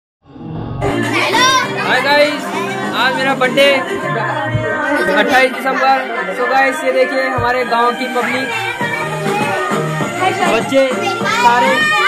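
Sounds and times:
music: 0.3s - 12.0s
high raised voices: 0.8s - 12.0s
man speaking: 1.8s - 4.4s, 5.0s - 8.5s.

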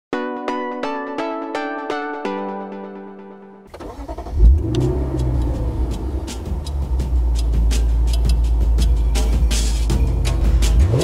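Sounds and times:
car engine starting and idling: 3.7s - 11.0s.

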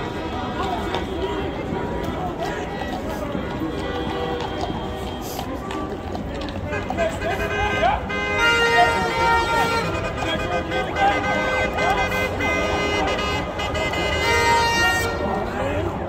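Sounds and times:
crowd shouting and chatter: 0.0s - 16.0s
vehicle horns honking: 3.3s - 5.5s, 6.7s - 15.6s.

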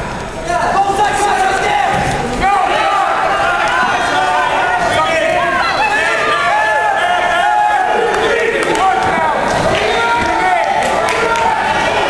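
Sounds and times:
spectators shouting: 0.4s - 12.0s.

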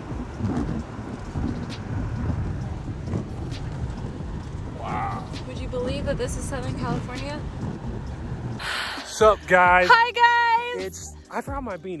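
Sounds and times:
tyre and engine rumble: 0.0s - 12.0s.

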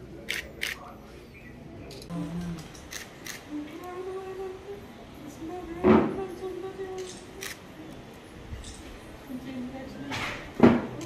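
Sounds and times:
murmur of voices: 0.0s - 11.0s
camera shutters clicking: 2.0s - 3.4s, 7.0s - 7.6s.

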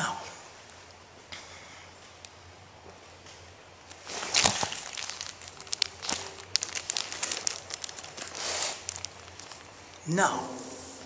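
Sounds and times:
handling rustle: 3.9s - 10.1s.

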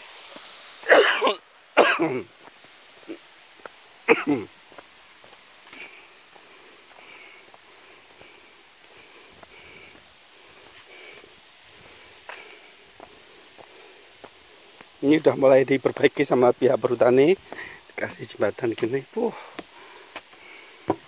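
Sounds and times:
faint outdoor ambience: 0.0s - 21.0s
footsteps on dirt path: 2.3s - 17.9s, 18.7s - 21.0s.

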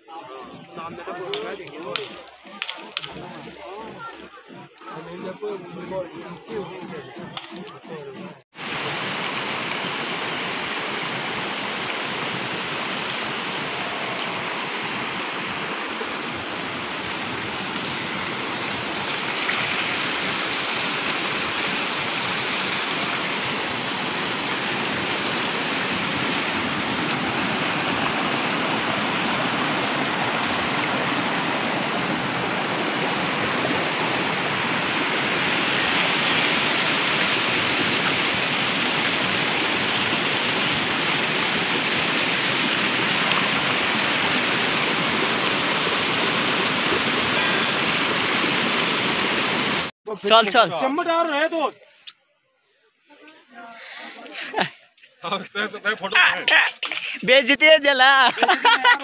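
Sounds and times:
water pouring into pool: 8.6s - 49.9s.

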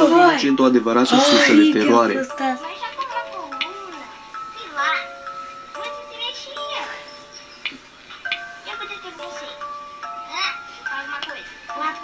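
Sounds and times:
person speaking: 0.0s - 5.0s
eerie chime-like synth music: 0.0s - 12.0s.

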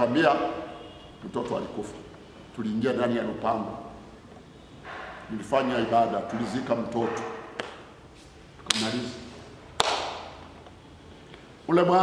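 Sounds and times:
sharp knocks in reverberant hall: 4.8s - 8.0s, 8.6s - 10.5s.

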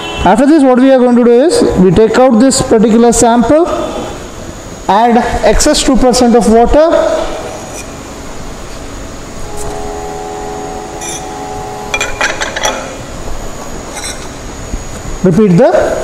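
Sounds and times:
room noise: 0.0s - 16.0s.

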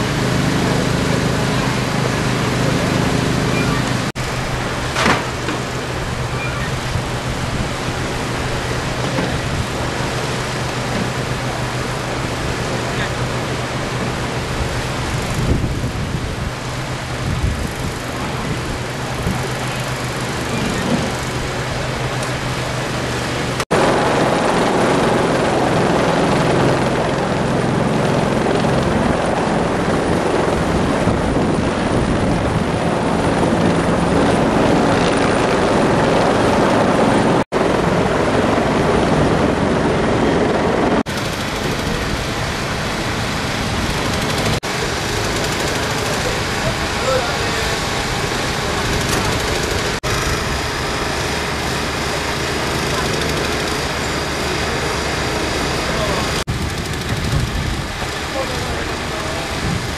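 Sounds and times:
engine drone: 0.0s - 59.9s.

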